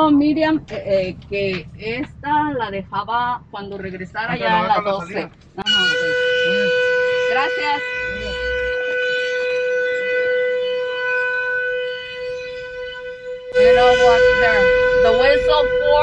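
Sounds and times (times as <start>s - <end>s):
factory whistle blowing: 5.6s - 16.0s.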